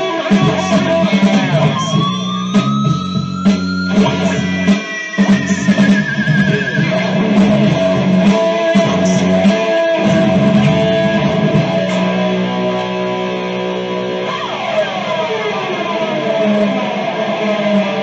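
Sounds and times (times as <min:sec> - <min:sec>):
electric guitar: 0:00.0 - 0:18.0.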